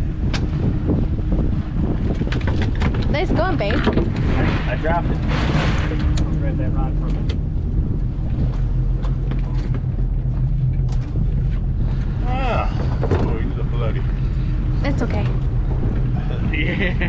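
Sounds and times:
boat engine humming: 0.0 - 17.0.

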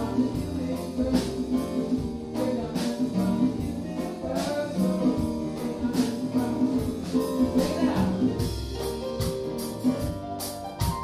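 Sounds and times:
congas: 0.0 - 11.0
drum kit: 0.0 - 11.0
keyboard: 0.0 - 11.0
piano: 0.0 - 11.0.

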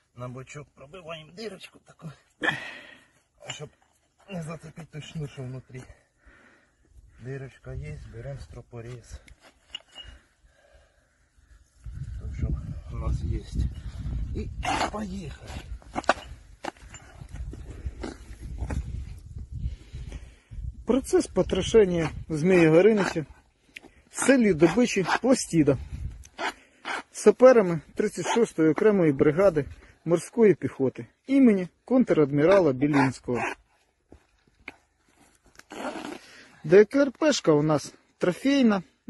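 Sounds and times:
cutter scraping and tearing hose: 26.2 - 27.2.

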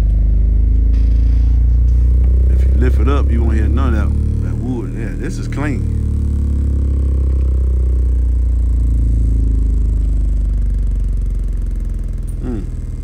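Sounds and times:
deep bass tone from subwoofer: 0.0 - 13.0.

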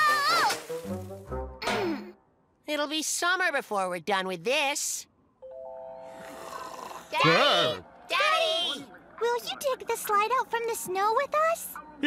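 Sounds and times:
playful music: 0.0 - 2.1, 5.4 - 6.3.

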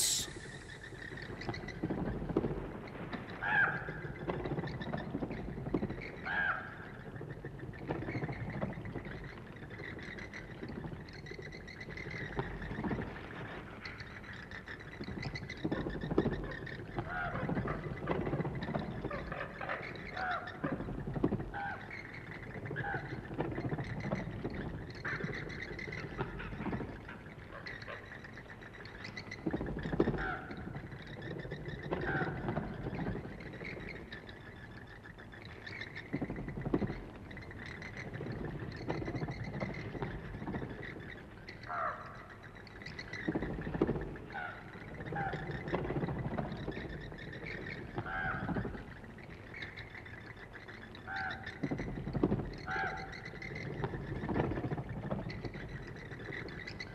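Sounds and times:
bats squeaking: 0.0 - 1.2.

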